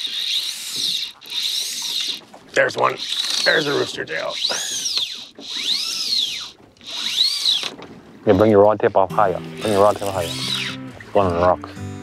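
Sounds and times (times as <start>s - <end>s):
fishing reel drag buzzing: 0.0s - 7.8s, 9.2s - 10.8s.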